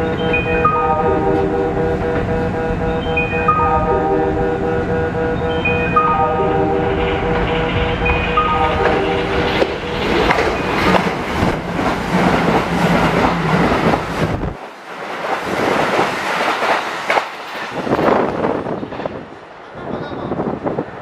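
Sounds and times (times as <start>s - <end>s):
train deep rumble: 0.0s - 21.0s
train wheels clattering over rail joints: 9.4s - 19.3s.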